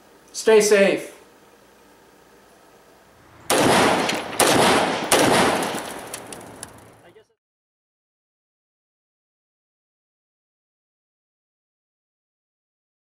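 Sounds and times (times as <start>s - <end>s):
rapid gunfire: 3.5s - 6.3s.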